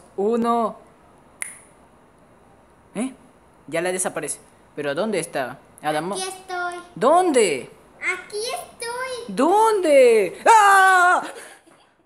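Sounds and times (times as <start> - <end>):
finger snap: 1.4 - 1.7.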